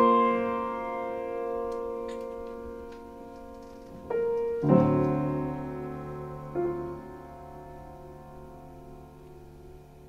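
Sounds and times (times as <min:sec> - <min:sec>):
piano chord ringing: 0:00.0 - 0:10.0.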